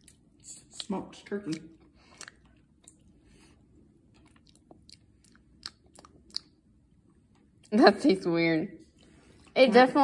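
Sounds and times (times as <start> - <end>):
mouth clicks and smacks: 0.0 - 3.2, 4.0 - 6.9
person chewing: 0.0 - 7.7.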